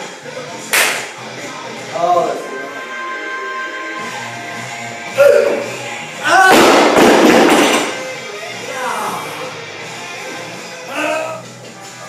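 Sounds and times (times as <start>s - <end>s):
background music: 0.0s - 12.0s
sharp slap: 0.7s - 1.2s.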